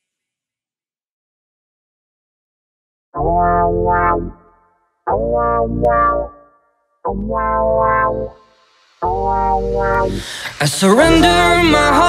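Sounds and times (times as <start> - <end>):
a cappella vocal chord: 10.0 - 12.0.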